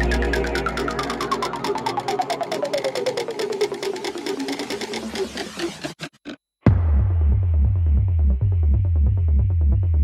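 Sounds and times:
clicky synth notes sliding down: 0:00.0 - 0:05.8.

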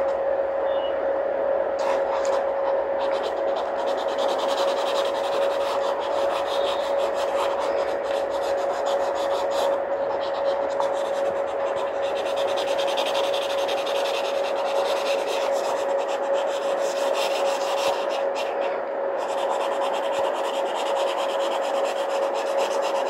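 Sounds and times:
steady hum: 0:00.0 - 0:23.0
pencil scratching on paper: 0:01.8 - 0:23.0.

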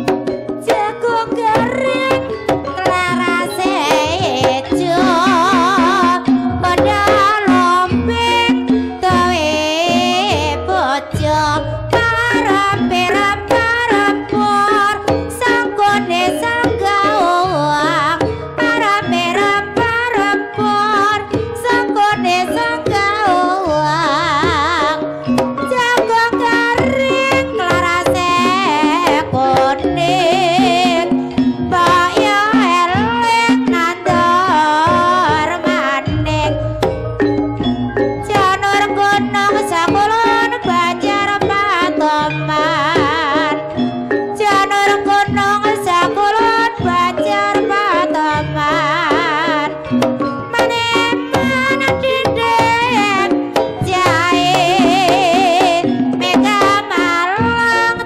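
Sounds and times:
drum strokes: 0:00.0 - 0:57.6
gamelan ensemble playing: 0:00.0 - 0:58.0
ornamented lead melody: 0:00.0 - 0:58.0.

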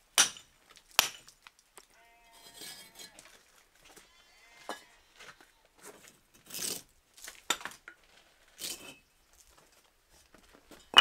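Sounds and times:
bricks clinking and scraping: 0:05.9 - 0:09.7, 0:10.4 - 0:11.0.

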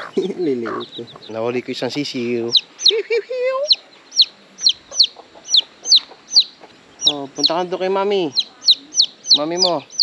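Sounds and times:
chick peeping loudly: 0:00.0 - 0:10.0.

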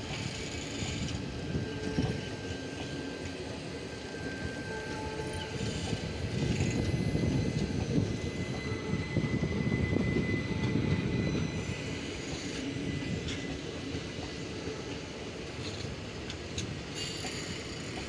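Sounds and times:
train wheels rumbling on rails: 0:00.0 - 0:18.0.

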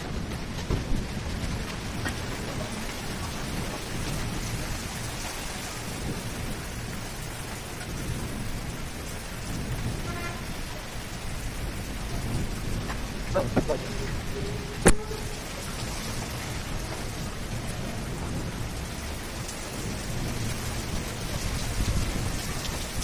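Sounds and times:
steady rain: 0:00.0 - 0:23.0.

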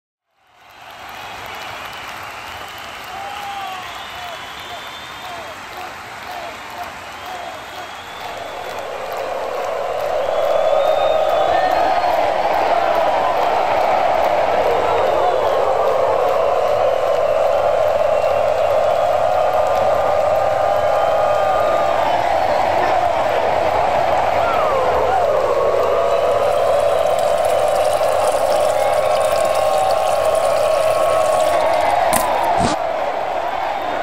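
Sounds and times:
urine splashing into a urinal: 0:26.4 - 0:32.4.

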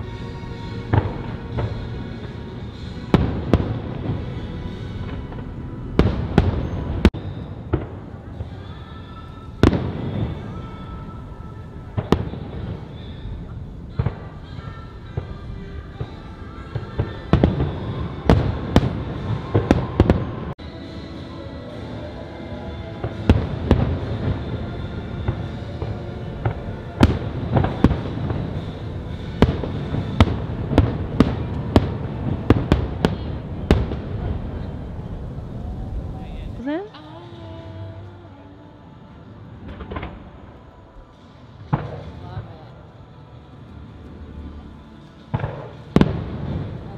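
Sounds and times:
music soundtrack: 0:00.0 - 0:46.9.

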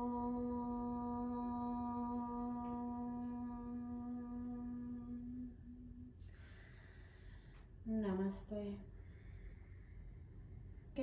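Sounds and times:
woman humming: 0:00.0 - 0:06.3
soft breath: 0:06.0 - 0:07.8, 0:08.9 - 0:11.0.

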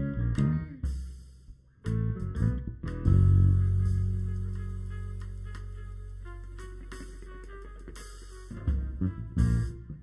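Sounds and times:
drum kit: 0:00.0 - 0:10.0
electric bass: 0:00.0 - 0:10.0
guitar: 0:00.0 - 0:10.0
piano: 0:00.0 - 0:10.0
trumpet: 0:03.2 - 0:10.0.

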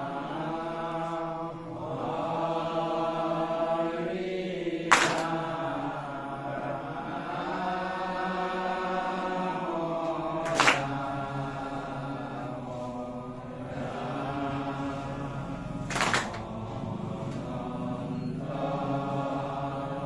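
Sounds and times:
men chanting in unison: 0:00.0 - 0:20.0
sharp clap: 0:04.8 - 0:05.7, 0:10.4 - 0:11.3, 0:15.8 - 0:16.6.

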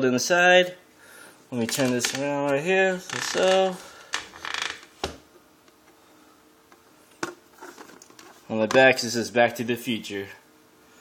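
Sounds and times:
plastic case rustling scrape: 0:07.5 - 0:08.4.

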